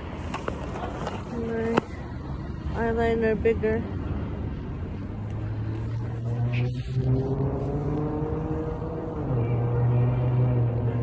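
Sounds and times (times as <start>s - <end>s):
low vehicle engine hum: 0.0s - 11.0s.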